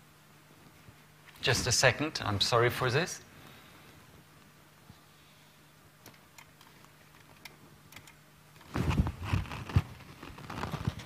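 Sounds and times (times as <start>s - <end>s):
handling rustles: 8.6s - 11.0s.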